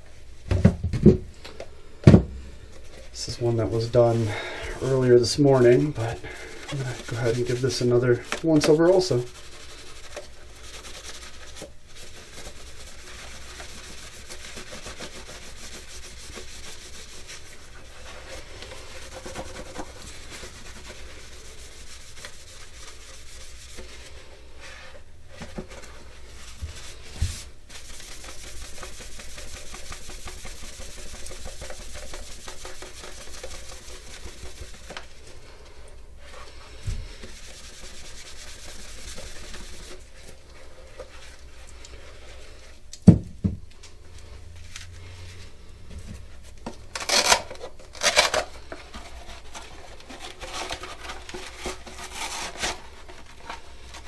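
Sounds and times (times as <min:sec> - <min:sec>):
cloth rubbing: 0:02.7 - 0:42.8.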